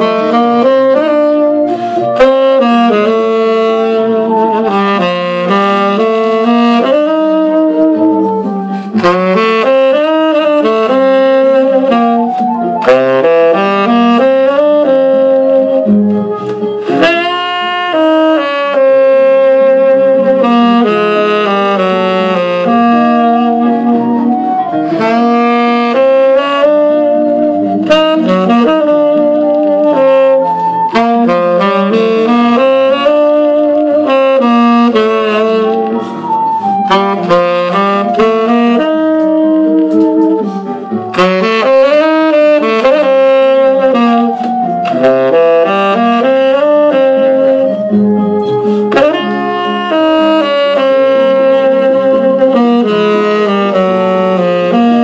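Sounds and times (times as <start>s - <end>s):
tenor saxophone melody: 0.0s - 55.0s.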